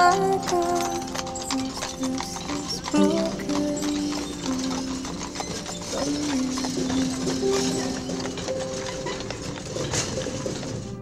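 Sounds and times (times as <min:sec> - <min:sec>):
hooves clip-clopping on pavement: 0:00.0 - 0:11.0.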